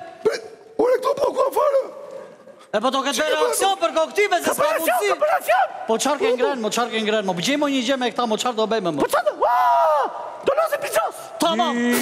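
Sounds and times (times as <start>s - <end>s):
person hiccuping: 0.1s - 1.5s.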